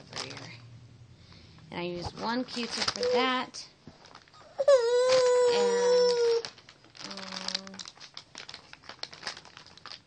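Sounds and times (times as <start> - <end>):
plastic packaging crinkling: 0.0 - 0.6, 2.1 - 10.0.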